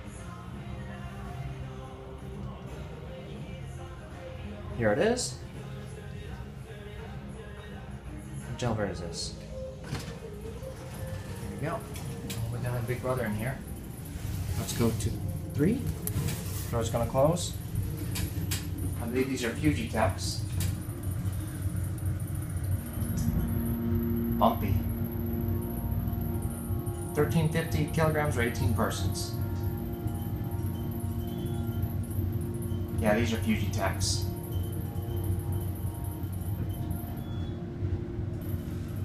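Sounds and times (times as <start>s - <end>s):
elevator low uneven rumble: 0.0s - 39.0s.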